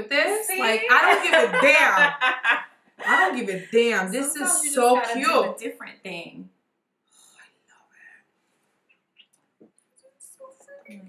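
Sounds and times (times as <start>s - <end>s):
faint whispered speech: 10.1s - 11.0s.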